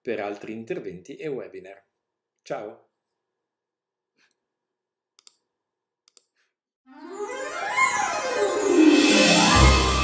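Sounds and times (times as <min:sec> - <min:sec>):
music: 0:06.9 - 0:10.0.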